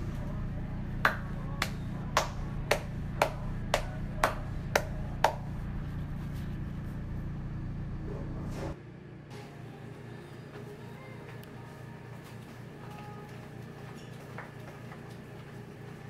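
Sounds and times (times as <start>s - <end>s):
steady low hum: 0.0s - 16.0s
person clapping hands: 1.0s - 5.4s.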